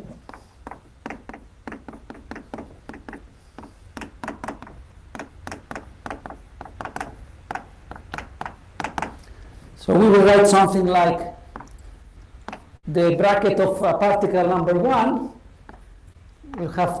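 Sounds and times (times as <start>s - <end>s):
chalk tapping on blackboard: 0.1s - 9.4s, 11.5s - 11.8s, 12.4s - 12.8s, 15.6s - 17.0s.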